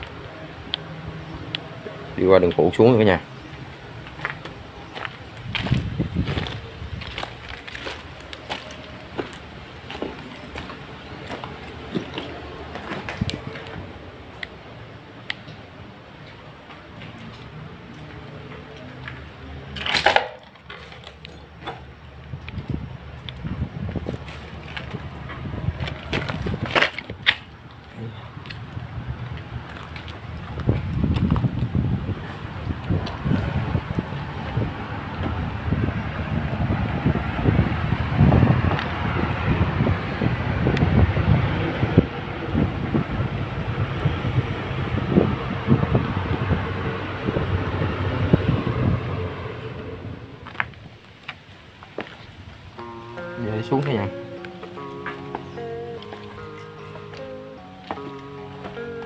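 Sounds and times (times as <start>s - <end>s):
wind rumbling on microphone: 3.2s - 14.3s, 22.2s - 52.9s
footsteps on dirt and leaves: 3.5s - 13.9s, 24.0s - 27.8s, 50.4s - 53.0s.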